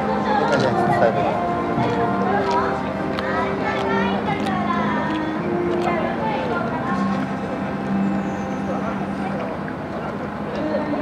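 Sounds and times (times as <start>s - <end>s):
scattered voices: 0.0s - 11.0s.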